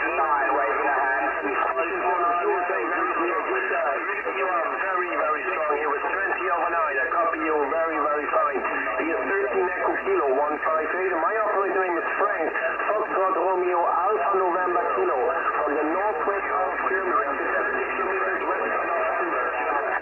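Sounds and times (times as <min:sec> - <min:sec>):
overlapping radio voices: 0:00.0 - 0:20.0.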